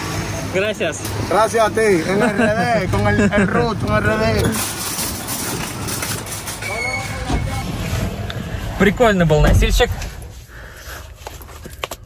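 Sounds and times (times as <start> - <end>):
shopping cart rattling on pavement: 4.3 - 7.1.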